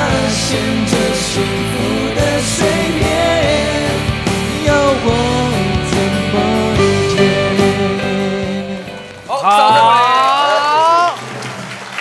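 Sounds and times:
lingering low chord: 0.0 - 9.3
live pop band music: 0.0 - 9.9
studio audience cheering: 9.3 - 12.0.

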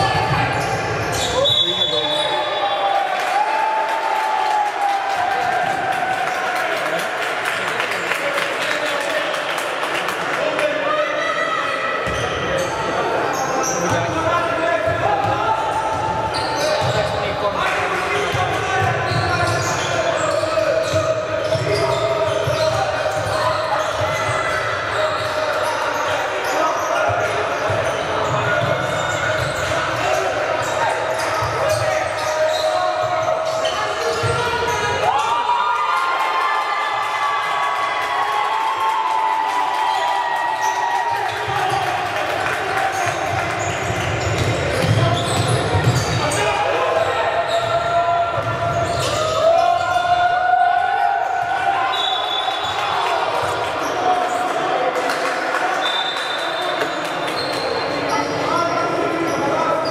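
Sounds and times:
players and coaches calling out: 0.0 - 59.9.

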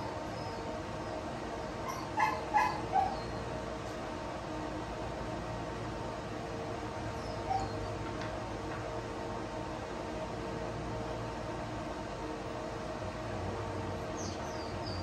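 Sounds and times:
drying fan hum: 0.0 - 15.0.

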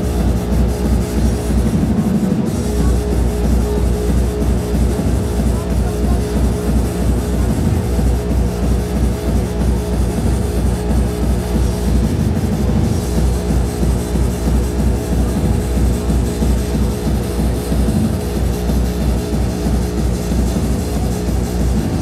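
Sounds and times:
overdriven bass drum pounding: 0.0 - 22.0.

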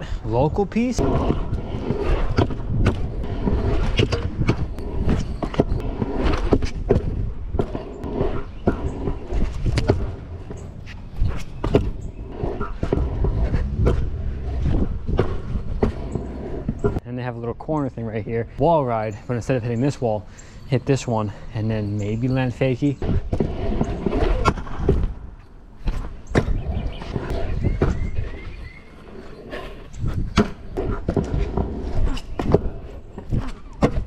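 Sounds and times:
scooter wheels rolling on concrete: 0.0 - 17.5, 21.0 - 34.0.

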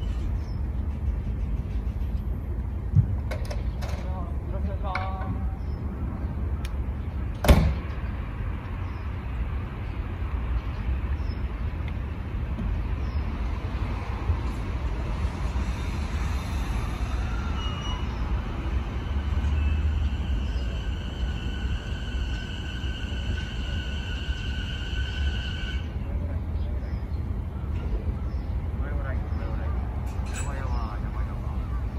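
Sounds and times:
electric train low rumble: 0.0 - 31.9
high whine of train: 0.0 - 31.9.

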